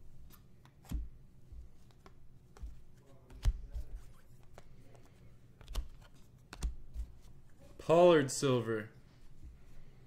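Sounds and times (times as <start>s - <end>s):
trading cards clicking and sliding: 1.7s - 7.4s.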